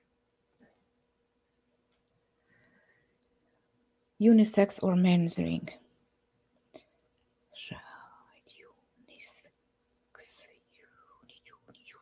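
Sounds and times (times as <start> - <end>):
faint whispered speech: 7.6 - 9.5, 10.2 - 12.0.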